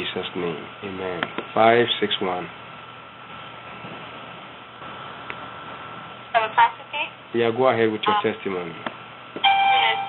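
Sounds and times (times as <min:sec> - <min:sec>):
telephone line hiss and hum: 0:09.4 - 0:10.0.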